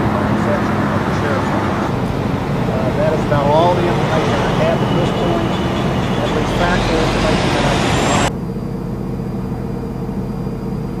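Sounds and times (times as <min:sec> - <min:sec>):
vehicle engines idling: 0:00.0 - 0:08.3.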